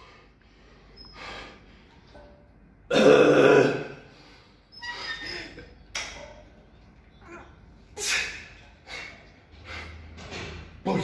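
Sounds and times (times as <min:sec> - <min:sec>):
man breathing heavily: 0:00.0 - 0:02.0, 0:08.0 - 0:10.2.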